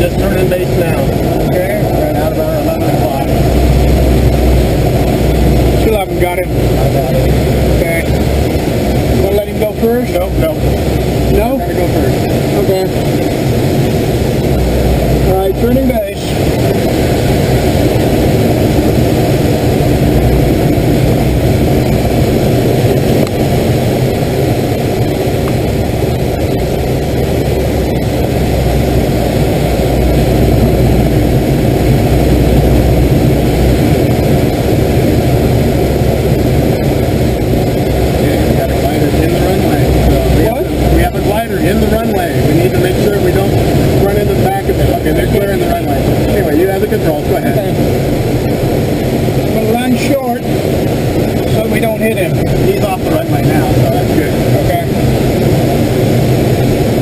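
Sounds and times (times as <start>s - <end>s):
air rushing over glider: 0.0s - 57.0s.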